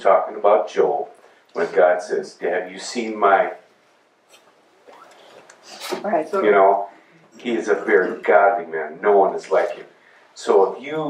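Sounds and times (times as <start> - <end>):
man speaking: 0.0 - 3.7, 6.2 - 11.0.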